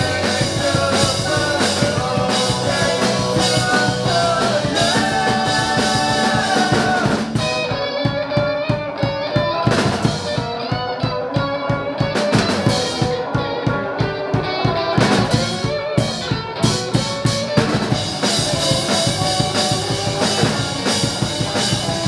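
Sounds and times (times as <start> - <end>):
drum kit beat: 0.0 - 22.0
electric guitars: 0.0 - 22.0.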